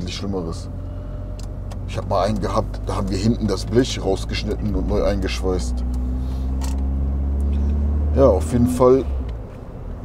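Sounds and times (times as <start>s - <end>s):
car engine drone in cabin: 0.0s - 10.0s
road noise: 0.0s - 10.0s.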